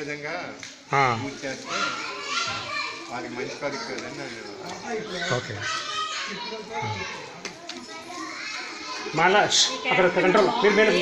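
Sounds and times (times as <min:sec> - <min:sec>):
children chattering: 0:00.2 - 0:11.0.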